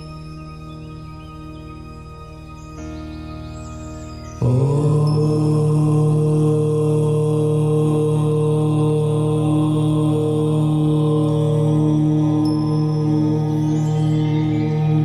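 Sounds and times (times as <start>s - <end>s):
chanted om drone: 0.0s - 15.0s.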